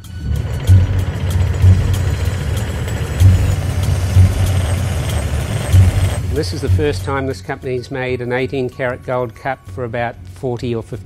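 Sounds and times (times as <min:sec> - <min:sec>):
metal-spinning lathe humming: 0:00.0 - 0:07.8
spinning tool pressing on metal: 0:00.3 - 0:07.1.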